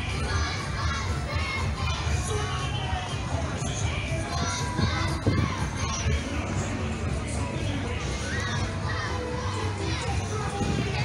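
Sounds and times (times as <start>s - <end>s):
children shouting: 0.0s - 6.5s, 7.9s - 11.0s
crowd hubbub: 0.0s - 11.0s.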